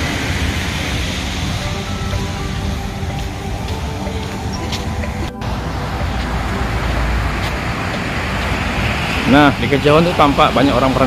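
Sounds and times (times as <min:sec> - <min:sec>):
low rumble: 0:00.0 - 0:10.3
surf breaking on beach: 0:00.0 - 0:11.0.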